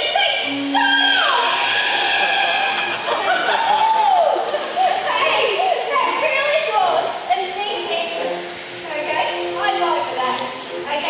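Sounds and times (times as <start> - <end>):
children chattering and calling out: 0.0 - 11.0.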